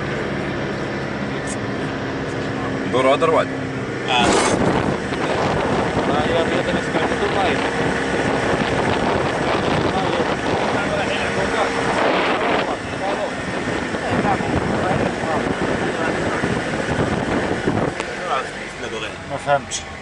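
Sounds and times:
car road noise: 0.0s - 20.0s
wind on microphone: 4.1s - 18.4s.

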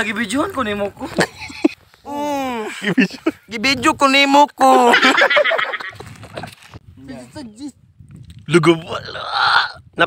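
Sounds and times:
man laughing loudly: 1.0s - 1.8s, 2.5s - 3.4s, 4.7s - 6.5s.

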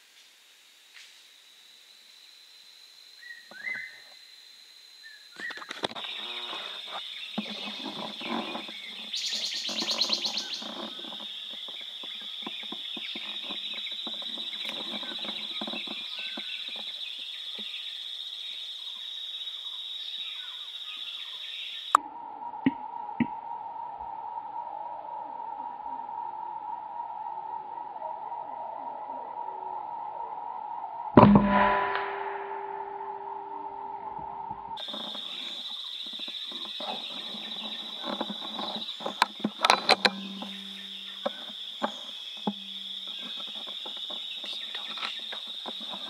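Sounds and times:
high-pitched insect drone: 1.6s - 46.0s
birds chirping and calling: 5.4s - 18.0s, 34.8s - 46.0s.

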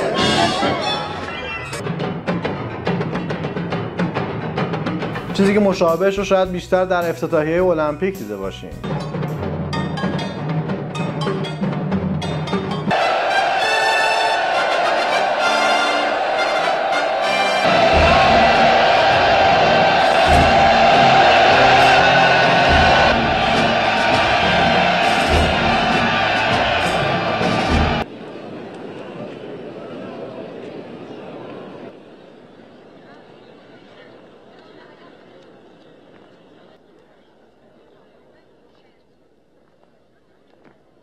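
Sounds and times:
brass fanfare over orchestra: 0.0s - 1.3s, 12.9s - 28.0s
heavy timpani strokes: 8.8s - 28.0s
driving drum rhythm: 17.6s - 28.0s.

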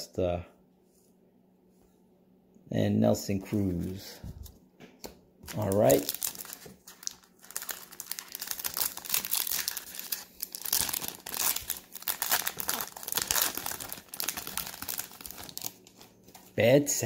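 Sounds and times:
foil wrapper crinkling and tearing: 5.5s - 16.6s.

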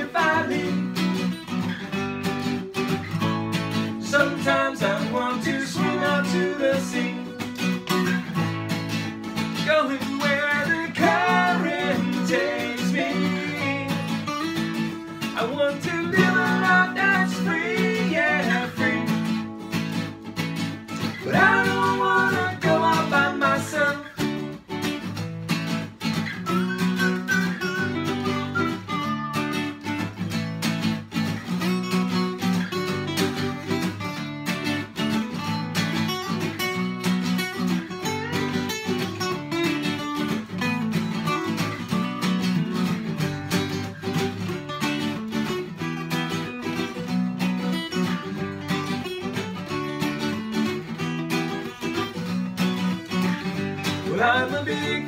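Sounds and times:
acoustic guitars strumming and picking: 0.0s - 55.0s.

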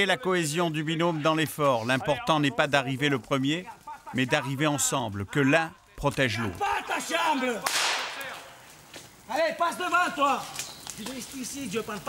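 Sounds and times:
man talking: 0.0s - 8.5s, 9.3s - 12.0s
sharp crack with hissing tail: 6.5s - 12.0s.

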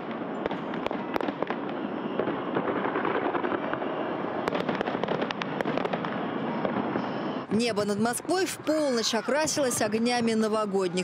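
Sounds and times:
fireworks pops and bangs: 0.0s - 7.8s
fireworks crackling: 0.0s - 11.0s.

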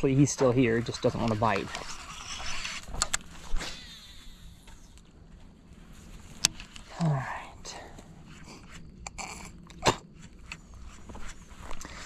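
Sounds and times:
reel spool whirring: 1.1s - 3.0s.

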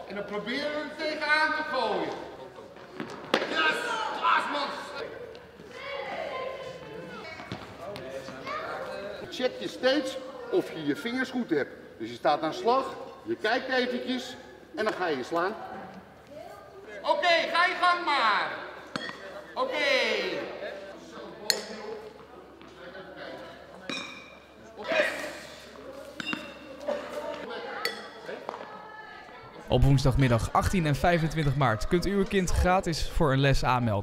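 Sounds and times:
tennis balls thudding on floor: 2.8s - 3.8s
baseball bat hitting ball: 3.0s - 3.6s, 18.9s - 19.2s.

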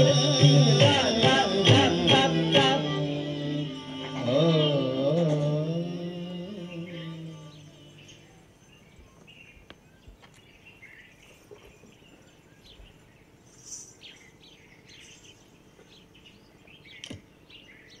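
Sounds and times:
birds chirping: 0.0s - 18.0s.

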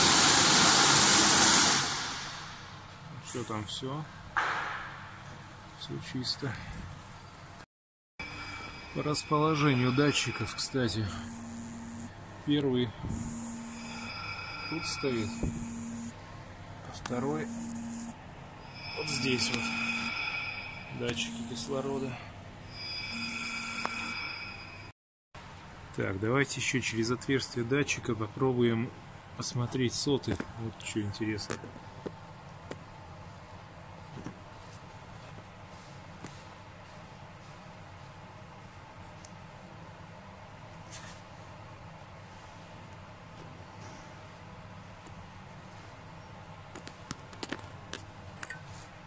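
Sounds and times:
hiss: 0.0s - 2.6s
steady low hum: 8.2s - 24.9s.

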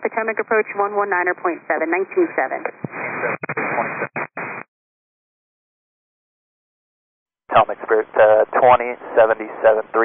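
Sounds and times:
radio static hiss: 2.3s - 4.7s, 7.5s - 10.0s.

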